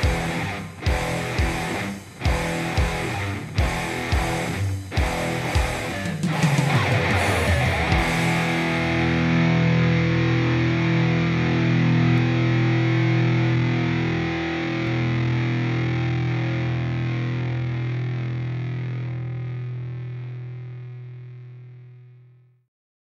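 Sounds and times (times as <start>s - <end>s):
distorted electric guitars ringing: 0.0s - 22.3s.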